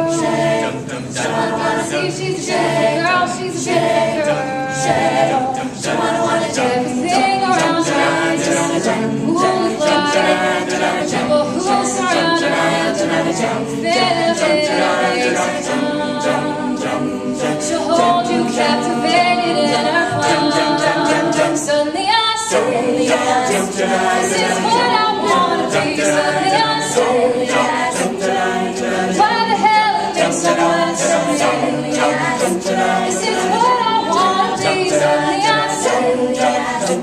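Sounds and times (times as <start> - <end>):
backing singers vocal rhythm: 0.0 - 37.0
woman singing lead: 0.0 - 37.0.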